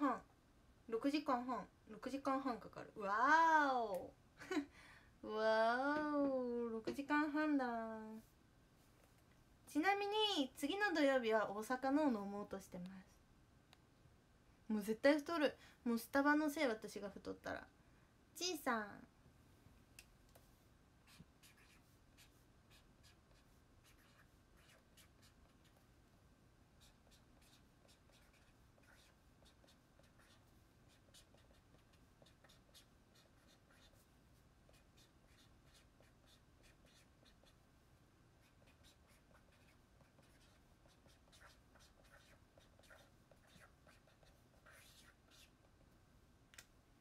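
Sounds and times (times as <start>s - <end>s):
pen scratching on paper: 21.1s - 25.8s, 26.8s - 34.1s, 34.7s - 37.6s, 38.4s - 45.5s.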